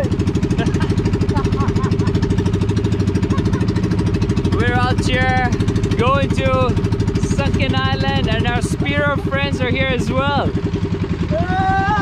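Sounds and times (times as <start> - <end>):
boat engine chugging: 0.0 - 12.0.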